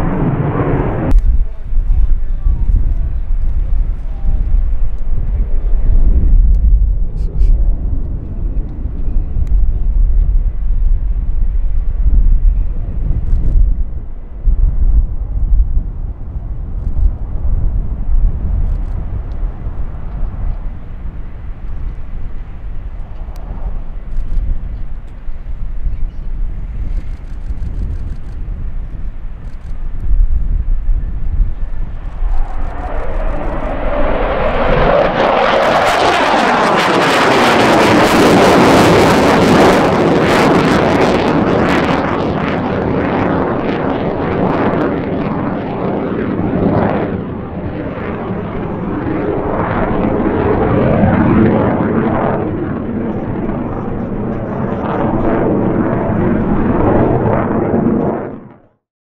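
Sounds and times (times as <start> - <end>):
loud jet roar: 0.0 - 14.4, 16.1 - 25.8, 29.0 - 58.8
distant jet rumble: 0.0 - 58.8.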